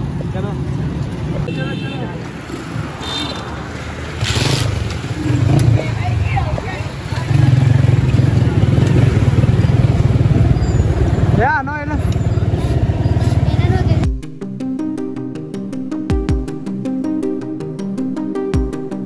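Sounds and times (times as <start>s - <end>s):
street traffic: 0.0s - 14.2s
voices: 5.0s - 14.1s
music with a regular beat: 13.8s - 19.0s.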